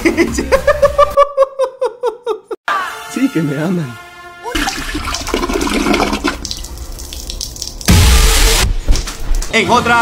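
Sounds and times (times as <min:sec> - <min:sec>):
water rushing: 0:04.6 - 0:08.0.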